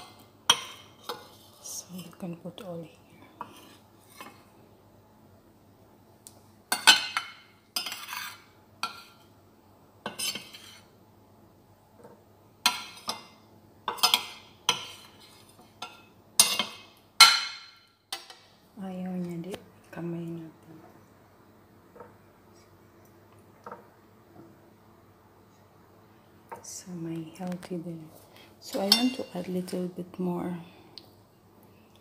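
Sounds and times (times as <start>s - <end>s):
metal spoon clinking on ceramic bowls: 15.8s - 18.4s, 28.8s - 29.4s.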